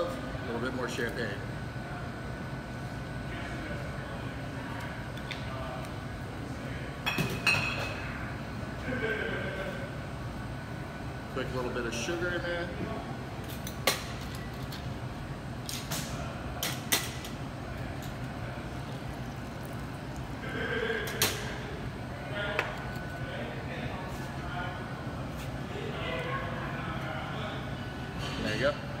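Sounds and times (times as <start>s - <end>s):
steady low hum: 0.0s - 29.0s
quiet voices: 17.6s - 29.0s.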